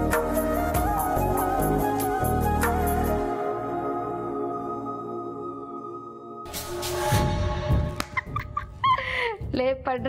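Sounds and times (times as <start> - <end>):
woman cackling laugh: 8.0 - 9.4.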